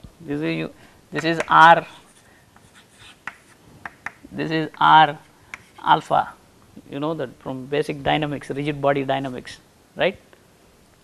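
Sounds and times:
chalk scratching on blackboard: 0:01.2 - 0:04.2.

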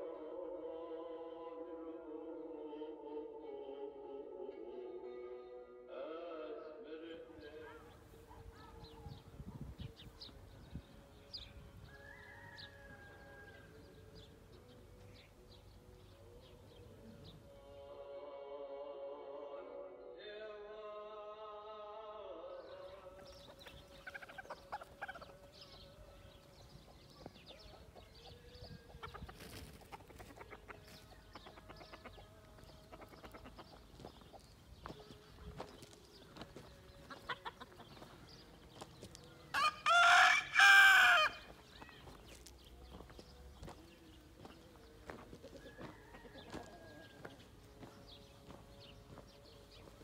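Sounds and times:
rooster crowing: 0:11.8 - 0:13.9, 0:39.5 - 0:41.5, 0:45.0 - 0:47.4
chickens clucking: 0:22.9 - 0:39.9, 0:40.9 - 0:50.0.

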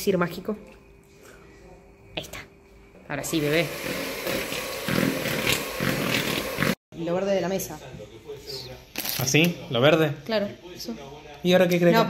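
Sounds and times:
electric hand mixer running: 0:03.2 - 0:06.8.

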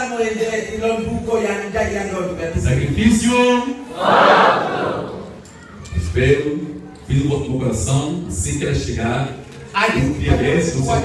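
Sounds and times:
congregation shouting together: 0:03.9 - 0:05.4.

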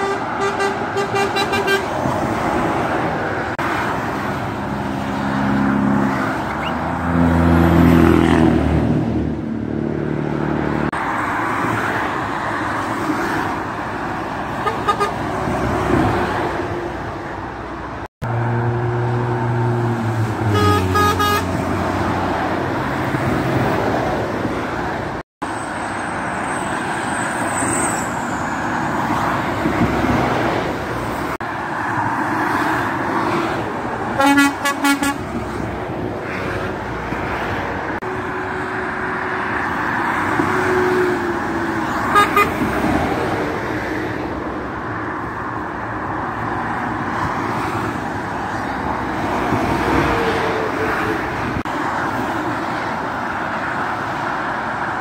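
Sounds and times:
motorway traffic: 0:00.0 - 0:55.0
lorry air horn: 0:20.5 - 0:21.6, 0:34.2 - 0:35.2.

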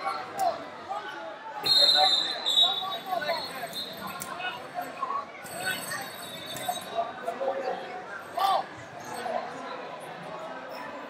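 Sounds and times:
babble of voices in a hall: 0:00.0 - 0:11.0
referee's whistle blast: 0:01.6 - 0:04.2.

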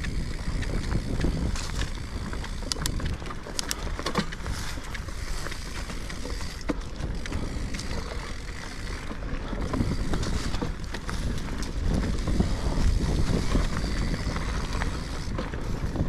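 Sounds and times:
bike rattling over bumps: 0:00.0 - 0:16.0
bike tyres rolling on dirt: 0:00.0 - 0:16.0
wind on microphone: 0:00.0 - 0:16.0.

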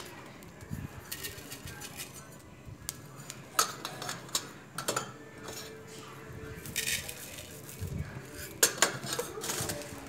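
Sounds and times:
metal clinks on cast-iron pan: 0:08.6 - 0:09.6.

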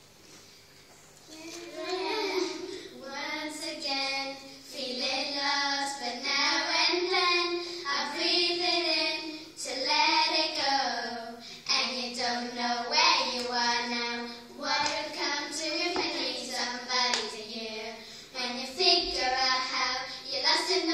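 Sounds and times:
girls singing together: 0:01.3 - 0:20.9.

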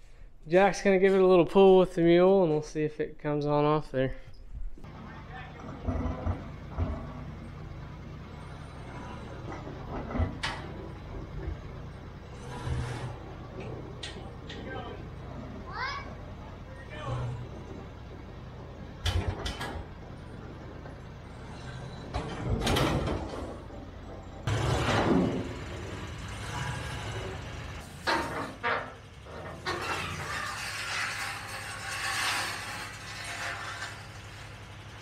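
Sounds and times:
low engine hum: 0:04.8 - 0:30.2
metal clanks and thumps: 0:04.8 - 0:34.8.

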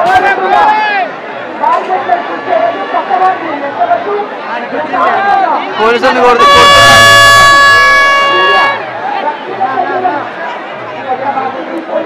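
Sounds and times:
babble of a large crowd: 0:00.0 - 0:12.0
loud steady horn blast: 0:06.3 - 0:08.8.

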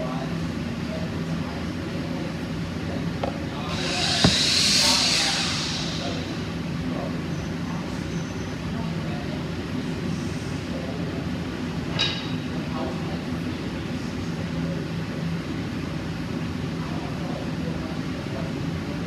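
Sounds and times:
low mechanical hum: 0:00.0 - 0:19.0
rushing hiss: 0:03.7 - 0:06.6.

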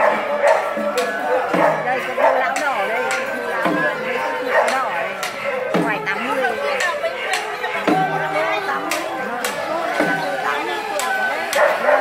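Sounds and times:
percussion steady beat: 0:00.0 - 0:12.0
voices talking: 0:00.0 - 0:12.0.

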